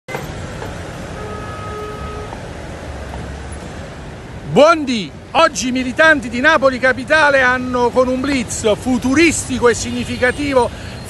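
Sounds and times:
city road traffic: 0.1 - 11.0
vehicle engine rumble: 0.1 - 11.0.

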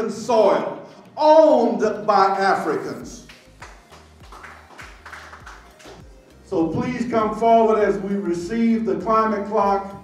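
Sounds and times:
faint background music with drum beat: 1.5 - 10.0.

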